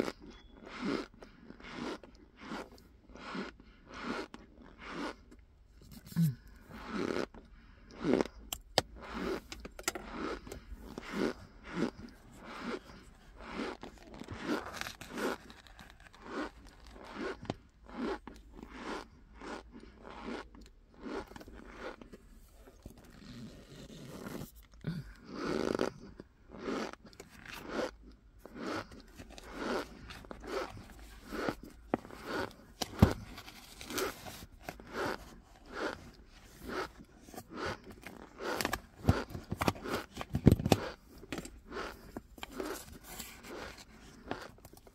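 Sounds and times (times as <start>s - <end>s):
cornstarch squeaking and crunching: 0.0s - 7.4s, 8.0s - 44.9s.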